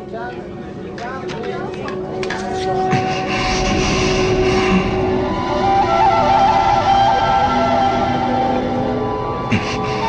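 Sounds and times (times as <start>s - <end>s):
sustained score tones: 2.0s - 10.0s
rushing noise: 2.6s - 10.0s.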